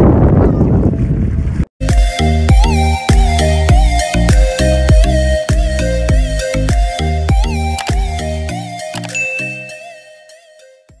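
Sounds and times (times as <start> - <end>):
outro music: 1.8 - 10.8
bell-like ding: 9.1 - 10.5.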